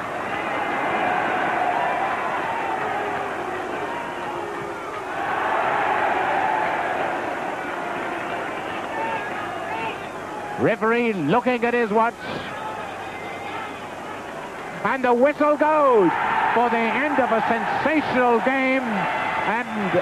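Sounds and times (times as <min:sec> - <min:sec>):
stadium crowd roar: 0:00.0 - 0:20.0.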